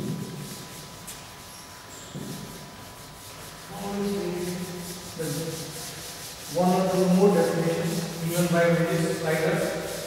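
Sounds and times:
duster rubbing on blackboard: 0.0 - 10.0
man talking: 3.7 - 4.6, 6.6 - 9.8.

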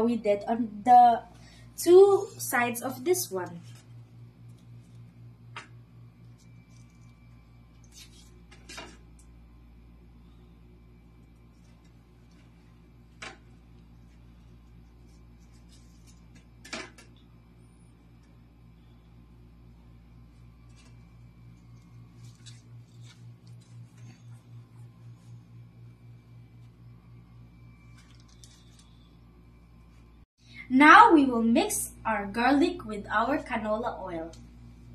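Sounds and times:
low steady hum: 0.0 - 34.9.

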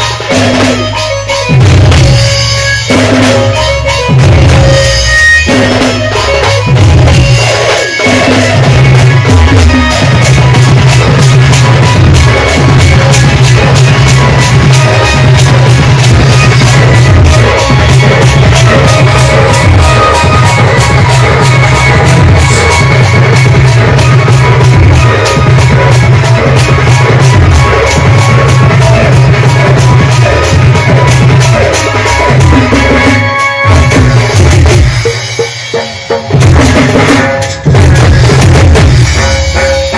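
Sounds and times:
folk band playing: 0.0 - 39.9.

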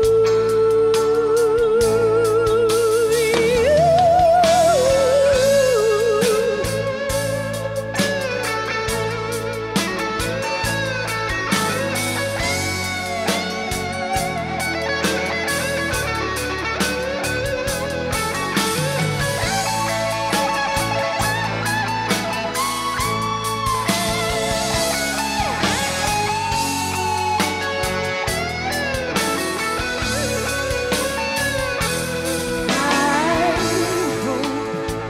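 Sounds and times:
bass and drums: 0.0 - 35.0
electric guitar solo: 0.0 - 35.0.

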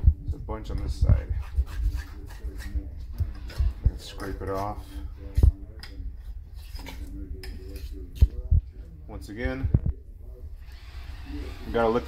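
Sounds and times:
spoon scraping a bowl: 1.3 - 8.4.

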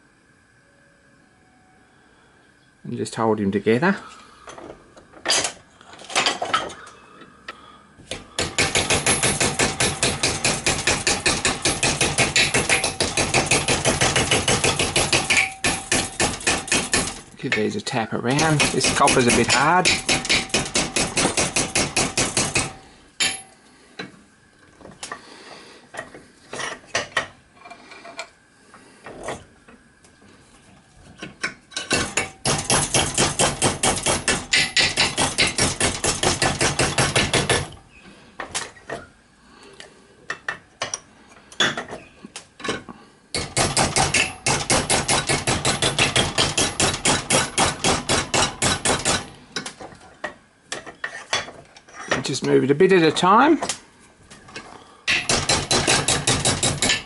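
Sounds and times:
hammer tapping copper sheet: 18.3 - 23.5, 31.9 - 37.6.

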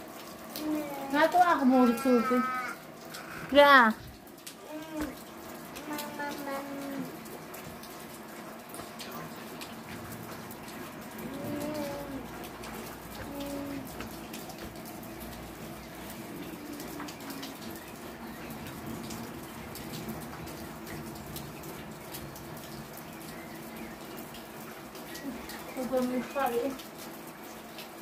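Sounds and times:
steady rain falling: 0.0 - 28.0.

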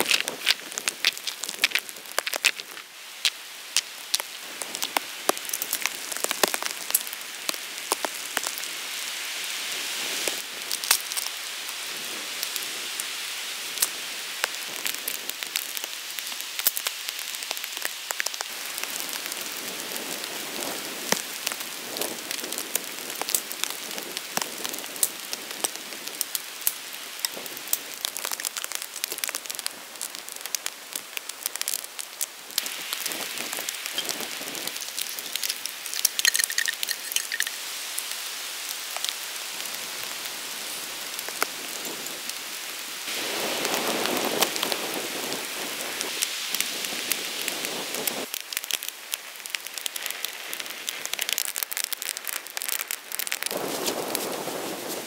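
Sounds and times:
steady rain falling: 0.0 - 55.0.

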